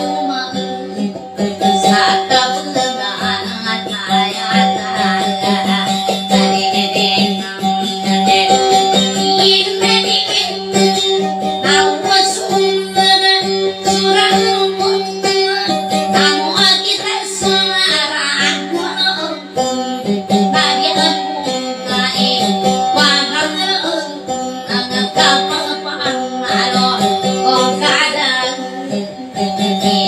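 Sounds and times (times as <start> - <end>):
electric guitar plucked melody: 0.0 - 30.0.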